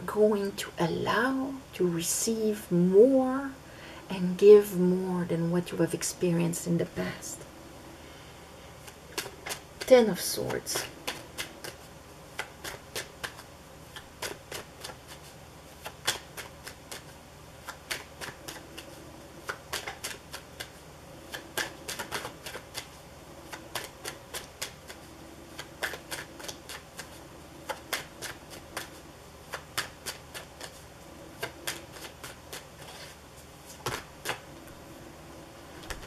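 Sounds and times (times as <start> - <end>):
cards being shuffled: 8.8 - 34.8, 35.8 - 36.0.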